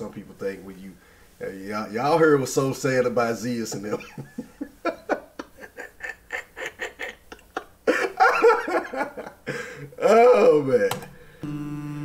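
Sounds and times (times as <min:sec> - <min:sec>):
man laughing: 0:03.7 - 0:10.4.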